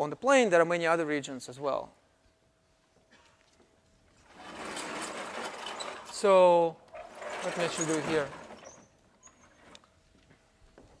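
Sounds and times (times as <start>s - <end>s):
blackboard scraping and rattling: 4.3s - 6.3s, 7.0s - 9.6s.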